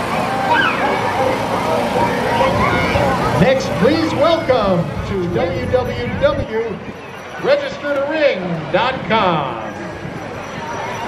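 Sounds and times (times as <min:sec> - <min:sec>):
people talking: 0:00.0 - 0:11.0
vehicle running low: 0:00.0 - 0:11.0.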